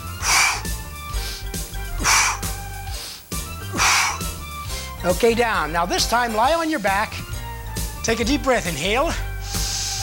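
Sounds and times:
man breathing hard: 0.0s - 5.0s, 9.3s - 10.0s
background music with bass: 0.0s - 10.0s.

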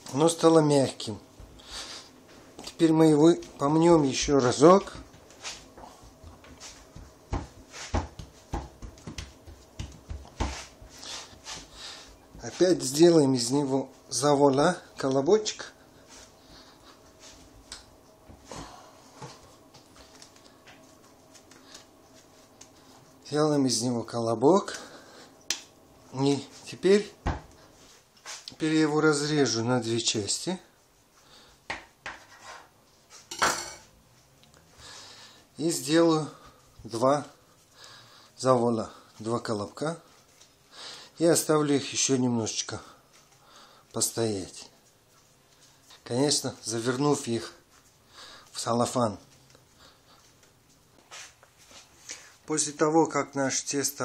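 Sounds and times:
dough kneading thuds: 2.5s - 13.7s, 26.4s - 27.8s.

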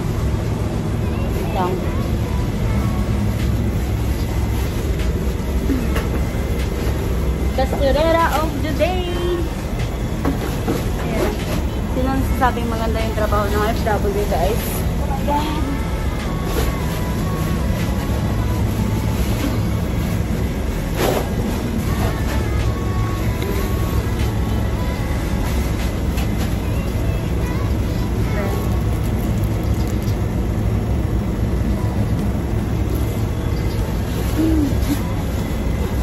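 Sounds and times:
low mechanical rumble: 0.0s - 36.0s.

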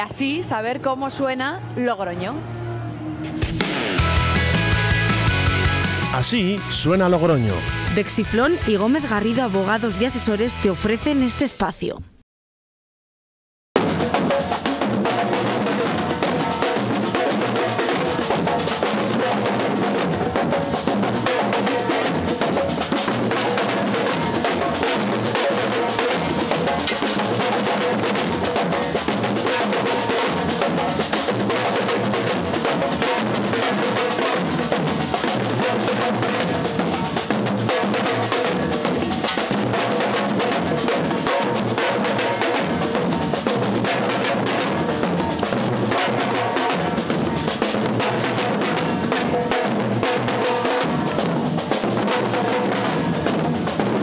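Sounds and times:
bass drums: 3.3s - 11.5s
snare drums struck with sticks: 23.0s - 28.6s, 37.7s - 42.8s.

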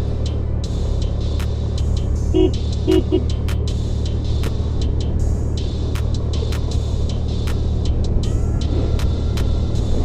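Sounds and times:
scooter horn beeps: 2.4s - 3.3s.

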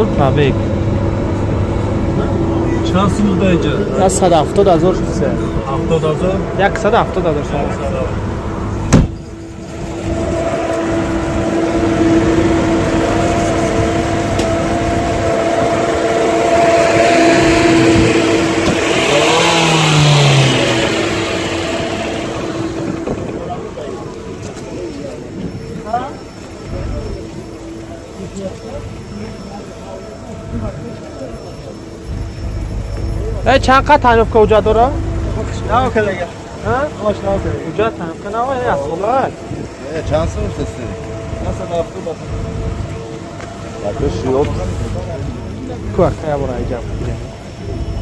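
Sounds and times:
car engine running: 0.0s - 25.4s, 26.4s - 48.0s
sharp knock: 8.9s - 9.2s.

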